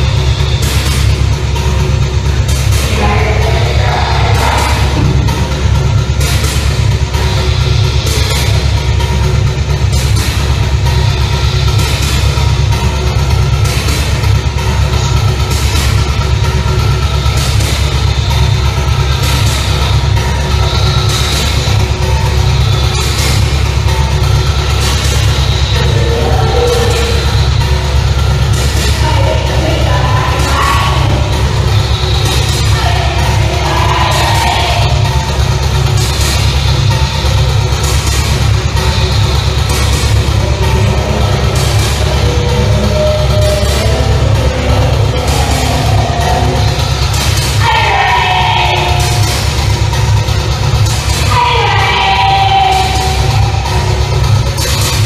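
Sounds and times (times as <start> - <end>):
drum machine strokes: 0.0 - 55.0
synthesizer bass drone: 0.0 - 55.0.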